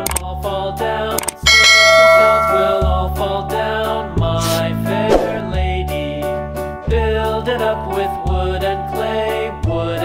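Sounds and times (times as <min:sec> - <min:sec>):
background music: 0:00.0 - 0:10.0
bell-like chime ringing: 0:01.5 - 0:03.1.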